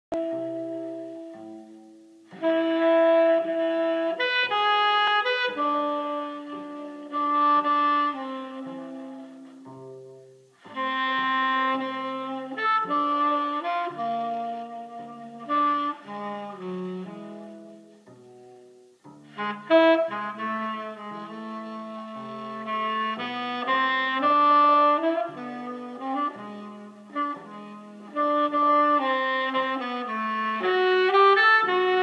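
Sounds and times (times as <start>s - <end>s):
saxophone music from a record: 0.1s - 32.0s.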